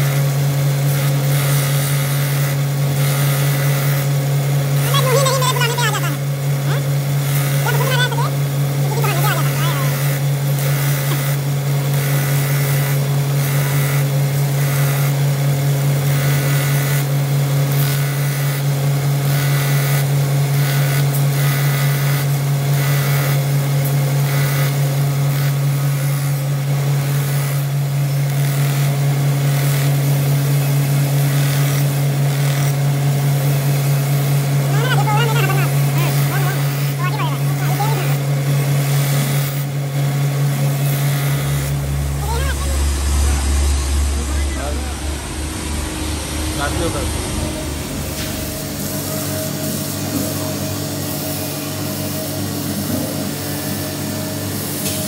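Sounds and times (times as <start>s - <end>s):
belt grinder motor hum: 0.0s - 55.0s.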